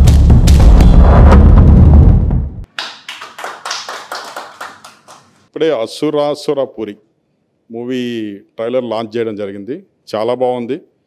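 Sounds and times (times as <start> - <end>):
people clapping: 2.7 - 5.4.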